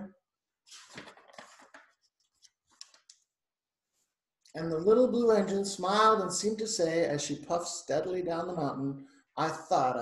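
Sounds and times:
paper pages rustling: 0:00.6 - 0:03.3
soft paper ticks: 0:01.0 - 0:03.3.

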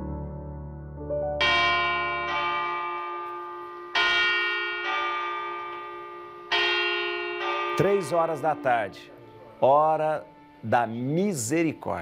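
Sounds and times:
bell striking: 0:01.4 - 0:09.9.

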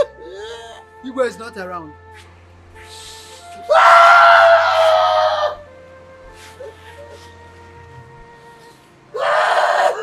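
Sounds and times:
soft background music: 0:00.0 - 0:10.0
man screaming: 0:03.7 - 0:05.6.

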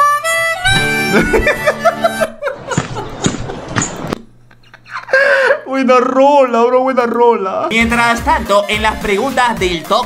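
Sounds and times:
harmonica playing: 0:00.0 - 0:02.5.

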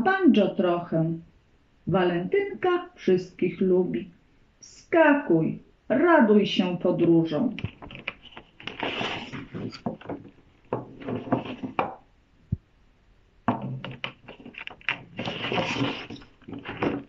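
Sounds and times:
card sliding scrape: 0:08.6 - 0:09.8
taps and knocks on wood: 0:09.7 - 0:12.0, 0:13.5 - 0:14.2.

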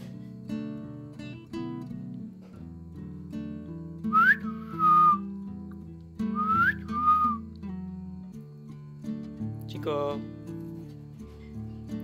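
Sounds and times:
acoustic guitar music: 0:00.0 - 0:12.0
two-part whistle: 0:04.0 - 0:05.3, 0:06.3 - 0:07.5.

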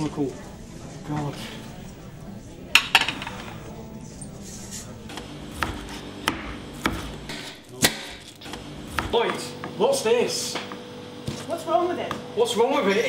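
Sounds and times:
crockery and utensils clinking: 0:02.7 - 0:04.9.

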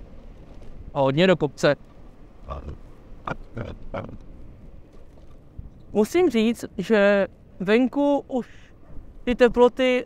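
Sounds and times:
wind and riding noise: 0:00.0 - 0:10.0.

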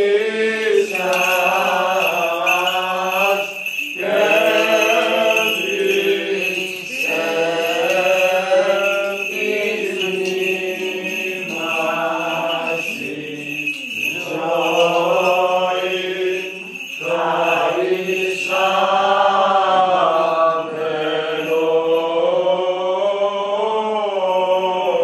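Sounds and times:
person chanting: 0:00.0 - 0:25.0.

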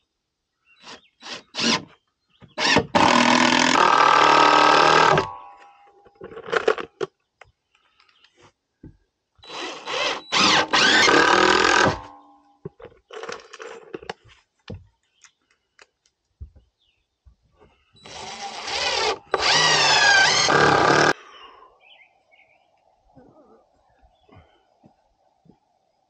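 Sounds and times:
cordless drill driving screws: 0:00.8 - 0:01.9, 0:02.6 - 0:05.3, 0:09.4 - 0:12.1, 0:18.0 - 0:21.2.

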